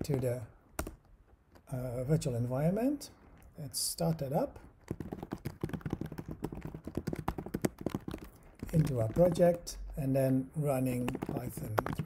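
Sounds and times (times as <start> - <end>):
computer keyboard typing: 4.8 - 12.0.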